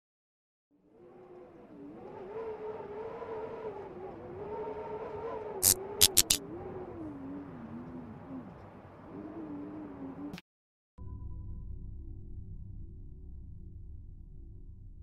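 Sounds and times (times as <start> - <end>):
wavering hum sinking in pitch: 0.8 - 10.4
sharp clicks: 5.6 - 6.4.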